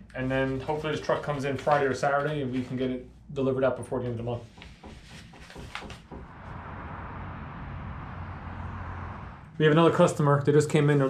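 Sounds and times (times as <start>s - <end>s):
soft knocks: 4.5s - 6.4s
low hum: 6.2s - 10.0s.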